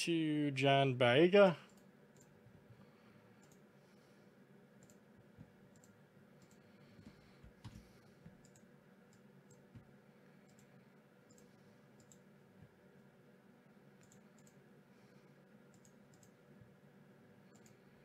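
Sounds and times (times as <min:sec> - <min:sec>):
faint computer mouse clicks: 0:03.4 - 0:03.6, 0:04.8 - 0:05.0, 0:07.6 - 0:09.6, 0:10.4 - 0:10.7, 0:11.3 - 0:12.2, 0:14.0 - 0:14.6, 0:15.7 - 0:16.4, 0:17.5 - 0:17.8.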